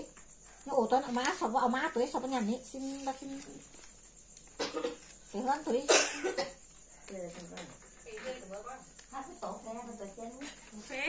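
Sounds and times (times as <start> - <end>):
person coughing: 4.6 - 5.0, 5.9 - 6.6.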